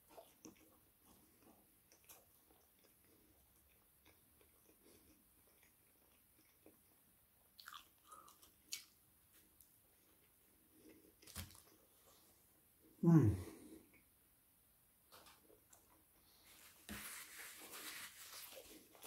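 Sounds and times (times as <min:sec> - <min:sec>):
faint chewing: 0:00.0 - 0:12.4, 0:15.1 - 0:17.0.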